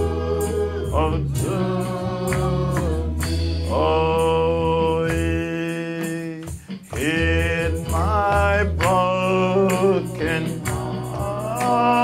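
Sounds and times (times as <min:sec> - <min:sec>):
instrumental accompaniment: 0:00.0 - 0:12.0
man singing gospel: 0:00.0 - 0:12.0.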